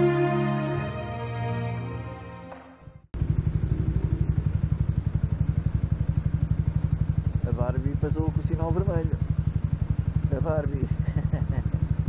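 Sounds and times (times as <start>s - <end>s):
background music: 0.0s - 3.1s
motorcycle engine idling: 3.2s - 12.0s.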